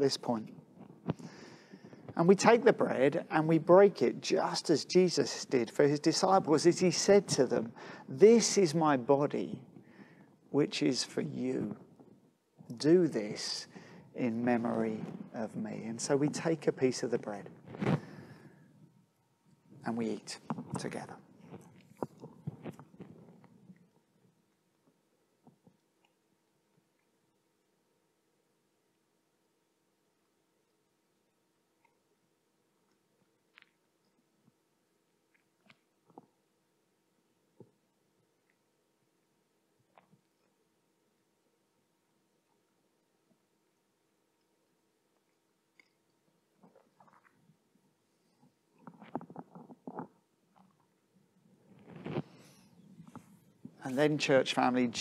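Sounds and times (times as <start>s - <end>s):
soft wet gurgles and clicks: 32.8s - 36.6s, 37.5s - 40.8s, 42.4s - 53.8s.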